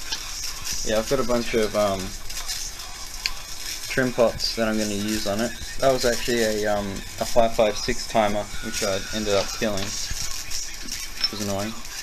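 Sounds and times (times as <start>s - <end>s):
sizzling high-voltage arc: 0.0s - 12.0s.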